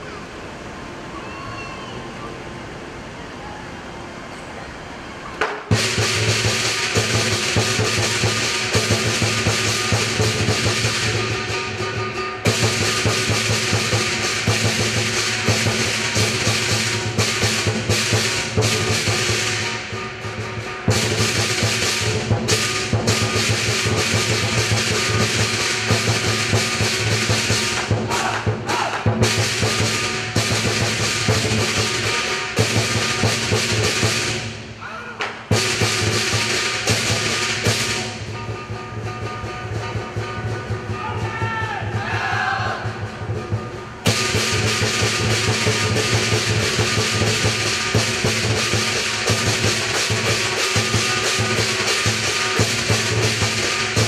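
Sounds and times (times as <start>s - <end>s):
large drum beating: 5.4s - 34.8s, 35.4s - 54.0s
cymbals clashing: 5.4s - 54.0s.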